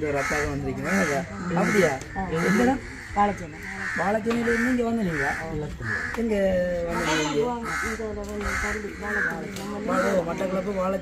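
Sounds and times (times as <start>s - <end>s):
bird calling: 0.0s - 11.0s
people talking: 0.0s - 11.0s.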